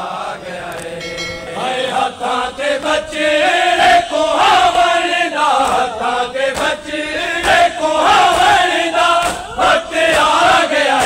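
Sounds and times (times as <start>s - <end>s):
men chanting a mourning lament: 0.0s - 11.0s.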